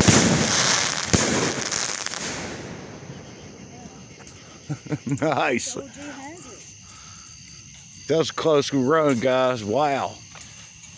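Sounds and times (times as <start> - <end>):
insects chirring: 0.0 - 10.9.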